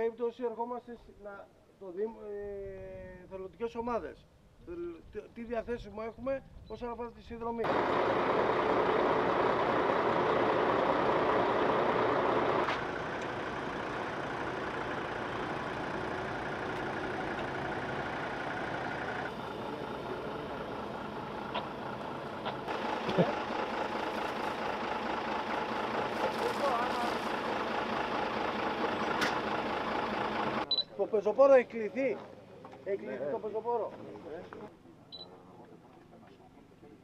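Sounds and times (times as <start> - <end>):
diesel engines running: 7.6 - 30.7.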